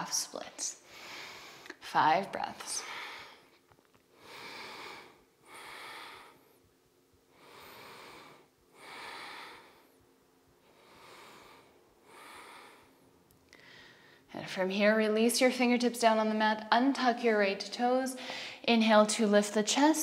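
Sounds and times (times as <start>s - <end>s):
woman breathing deeply: 0.8s - 1.8s, 2.7s - 14.3s, 18.2s - 18.7s.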